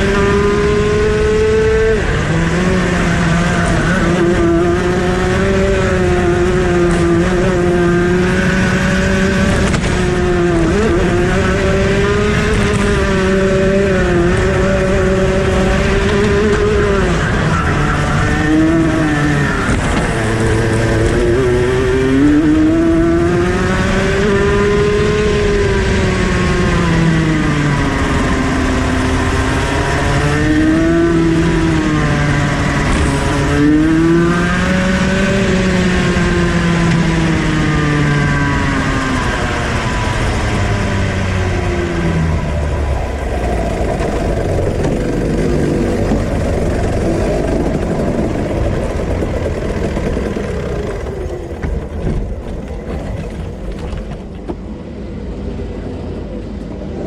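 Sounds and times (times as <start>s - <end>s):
kart engine revving: 0.0s - 55.0s.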